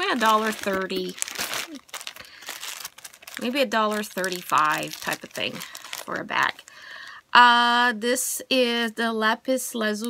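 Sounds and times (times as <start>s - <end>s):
plastic bags crinkling: 0.0s - 6.8s.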